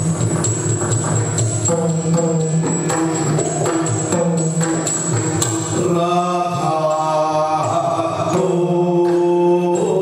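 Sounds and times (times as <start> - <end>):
percussion strokes: 0.0 - 10.0
man singing long line: 3.6 - 4.8, 5.7 - 10.0.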